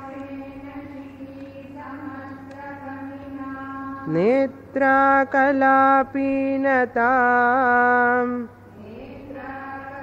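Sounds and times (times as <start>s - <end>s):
faint steady drone: 0.0s - 10.0s
woman chanting: 0.0s - 10.0s.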